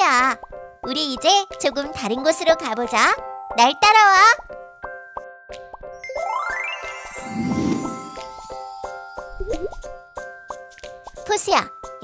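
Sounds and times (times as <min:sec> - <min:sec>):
cheerful plucked children's music: 0:00.0 - 0:12.0.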